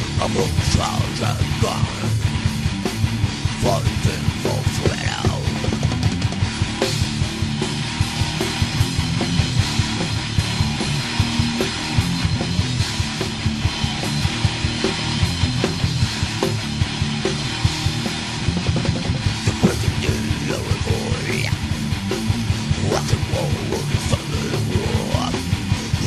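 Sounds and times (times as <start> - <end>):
bass guitar: 0.0 - 26.0
electric guitars: 0.0 - 26.0
fast dense drumming: 0.0 - 26.0.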